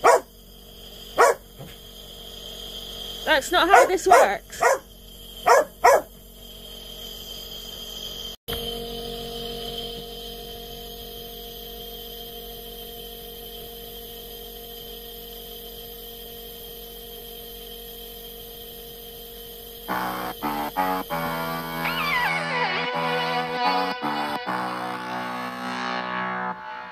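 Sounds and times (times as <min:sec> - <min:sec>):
hum of held tones: 0:00.0 - 0:26.9
music with stepped notes: 0:19.9 - 0:26.9.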